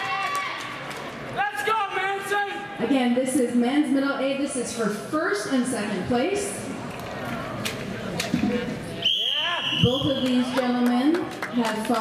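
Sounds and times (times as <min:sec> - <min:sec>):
crowd chatter in a hall: 0:02.0 - 0:12.0
shrill high-pitched whistle: 0:09.0 - 0:10.3.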